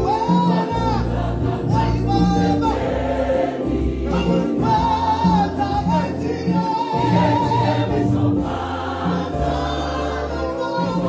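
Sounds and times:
man singing into a microphone: 0.0s - 2.8s, 4.1s - 7.6s, 9.6s - 11.0s
gospel choir singing: 0.0s - 11.0s.

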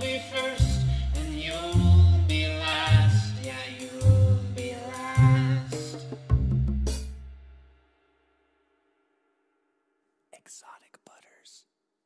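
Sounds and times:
person whispering: 10.4s - 11.7s.

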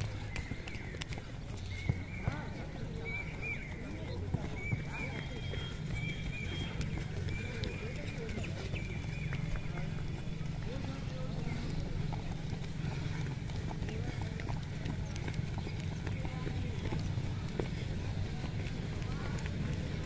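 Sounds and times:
footsteps jogging on dirt: 0.0s - 20.0s.

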